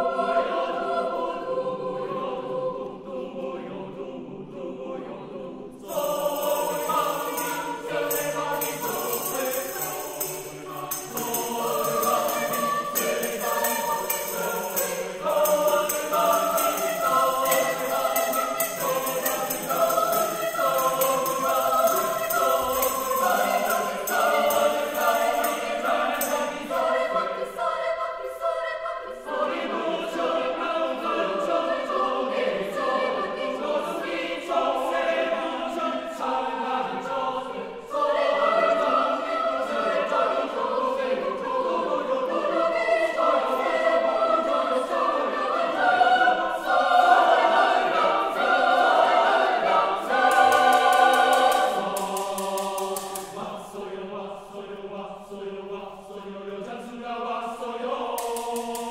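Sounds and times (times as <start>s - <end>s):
choir singing a cappella: 0.0s - 58.9s.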